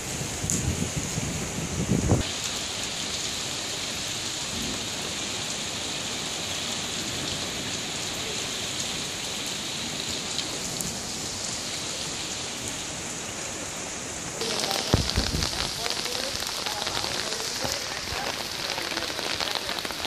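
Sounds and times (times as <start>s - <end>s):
rain on stone paving: 0.0s - 20.0s.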